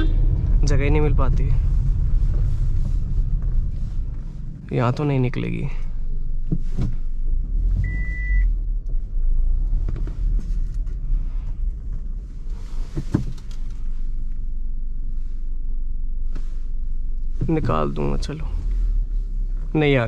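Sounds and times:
car engine and road rumble: 0.0 - 20.0
short electronic beep: 7.8 - 8.5.

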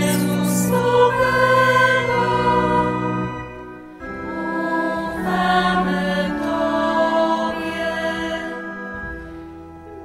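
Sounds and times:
choir holding long chords: 0.0 - 10.0.

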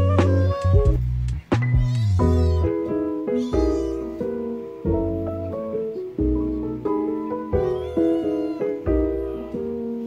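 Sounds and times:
kitten meowing: 0.0 - 1.0, 1.6 - 5.7, 6.3 - 10.0
slow piano and bass music: 0.0 - 10.0.

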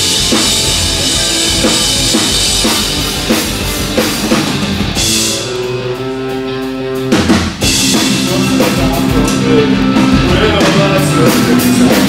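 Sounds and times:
drums and cymbals pounding: 0.0 - 12.0
heavy rock band playing: 0.0 - 12.0
held guitar and bass notes: 0.0 - 12.0.

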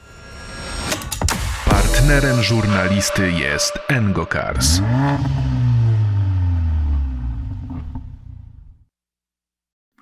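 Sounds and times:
car engine running: 4.6 - 8.8.

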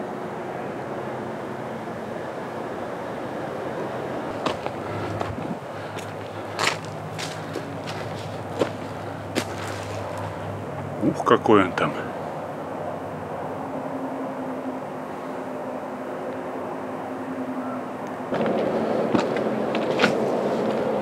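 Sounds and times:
distant motorway traffic: 0.0 - 21.0
footsteps on dry clay path: 4.3 - 10.8, 18.4 - 21.0.

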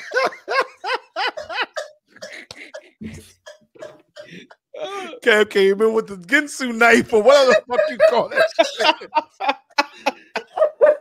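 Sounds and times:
man laughing in breathy gasps: 9.8 - 10.8.

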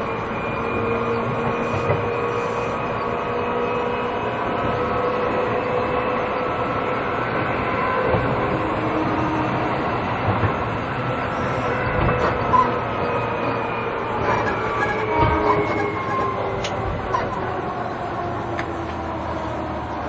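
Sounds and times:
traction motor whine: 0.0 - 20.0
train wheel and rail noise: 0.0 - 20.0.

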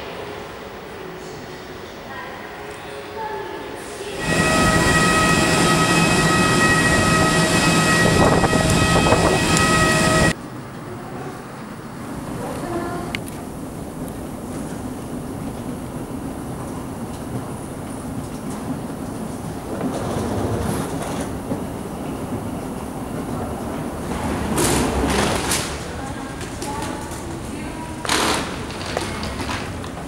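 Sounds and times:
rushing noises: 4.1 - 10.4.

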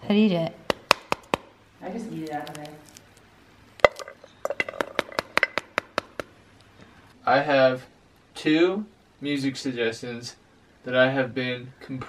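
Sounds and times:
seeds dropping into metal bowl: 2.1 - 3.1, 3.8 - 6.3.

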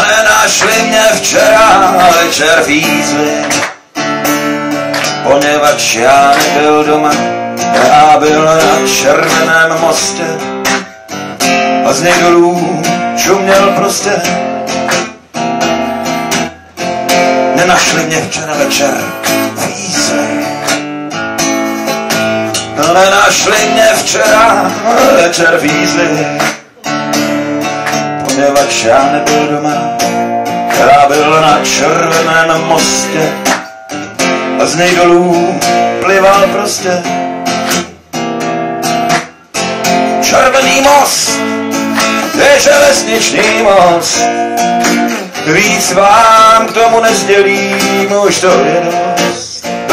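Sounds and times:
person singing: 0.0 - 3.9, 5.1 - 10.9, 11.6 - 14.6, 17.4 - 20.8, 22.6 - 33.7, 34.3 - 38.0, 40.0 - 49.9
acoustic guitar strumming chords: 0.0 - 49.9.

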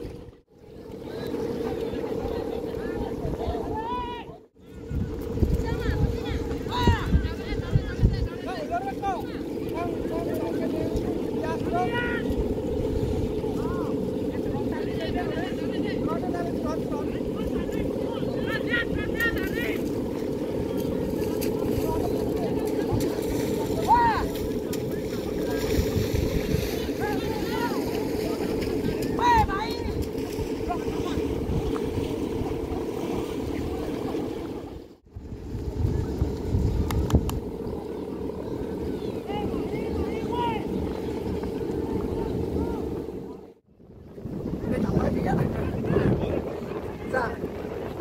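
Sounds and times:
steady low drone: 8.6 - 48.0
people calling out: 23.5 - 25.0.

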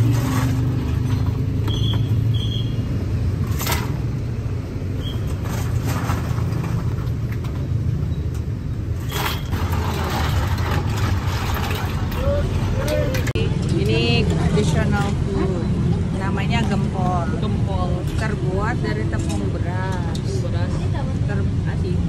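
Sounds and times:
street traffic rumble: 0.0 - 22.0
voices: 12.0 - 22.0.

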